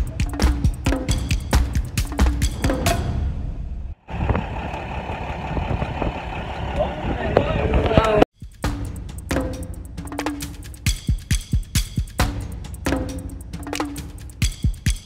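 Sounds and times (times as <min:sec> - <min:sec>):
background music with beat: 0:00.0 - 0:03.1, 0:08.3 - 0:15.0
wind noise: 0:02.5 - 0:08.3
vehicle engine running: 0:04.1 - 0:08.2.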